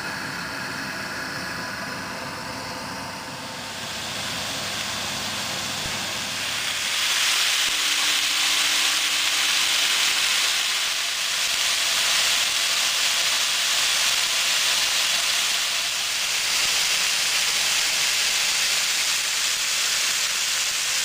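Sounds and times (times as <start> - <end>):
chicken sizzling in frying pan: 3.7 - 21.0.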